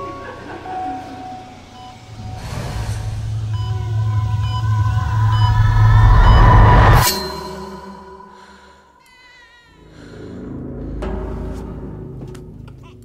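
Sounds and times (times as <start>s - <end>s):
deep rumbling swell: 0.0s - 9.0s.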